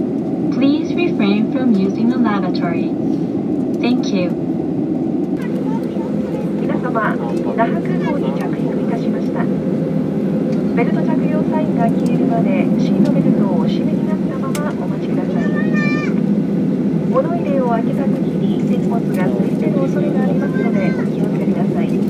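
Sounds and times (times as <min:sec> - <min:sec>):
airliner cabin engine noise: 0:00.0 - 0:22.0
passengers' voices: 0:00.5 - 0:22.0.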